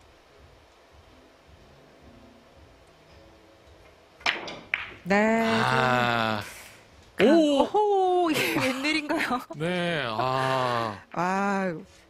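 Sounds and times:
billiard balls clacking: 4.2 - 5.1.

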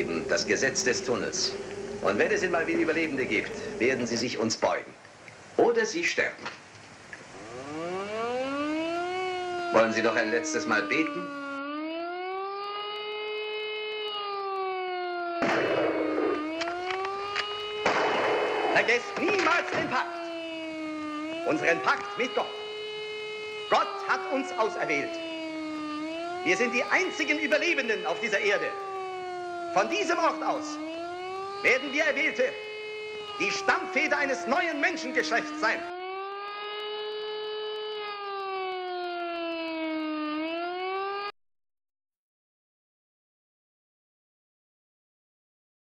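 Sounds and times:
siren wailing: 0.0 - 4.4, 7.2 - 41.3.

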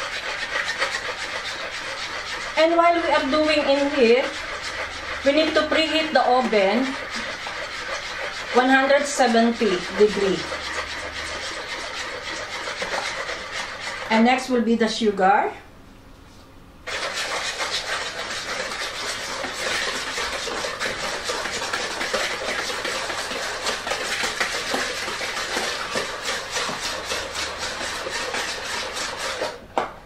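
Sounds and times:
wire whisk beating in glass bowl: 0.0 - 14.5, 16.9 - 29.6.

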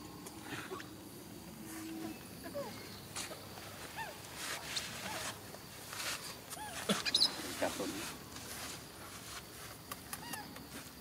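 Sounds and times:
rustling of grass and leaves: 0.0 - 11.0
monkey squeaking: 6.6 - 7.5.

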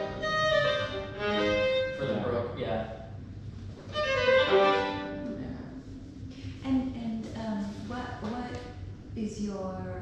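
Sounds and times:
solo violin phrase: 0.0 - 2.6, 3.9 - 5.3.

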